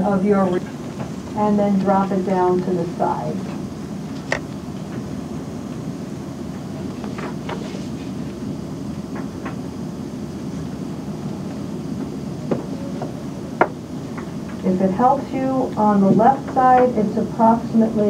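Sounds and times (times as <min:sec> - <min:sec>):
busy room background noise: 0:00.0 - 0:18.0.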